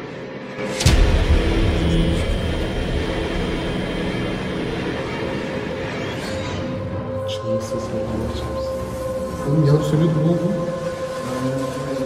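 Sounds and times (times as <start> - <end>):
low rumbling drone: 0.0 - 12.0
sudden horror hit: 0.5 - 7.3.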